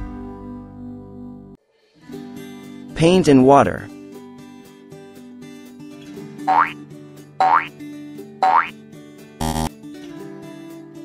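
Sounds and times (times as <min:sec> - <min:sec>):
cartoon boing sound effects: 0:06.5 - 0:06.8, 0:07.4 - 0:07.7, 0:08.4 - 0:08.7, 0:09.4 - 0:09.7.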